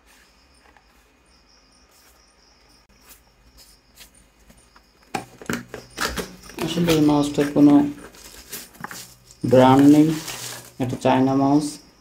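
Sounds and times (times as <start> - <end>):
cardboard box rustling: 5.2 - 10.9.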